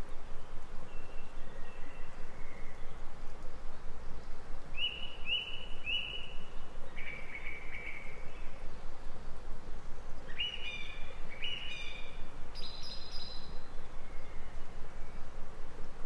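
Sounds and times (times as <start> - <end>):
songbird singing: 0.0 - 15.4
background hiss: 0.0 - 16.0.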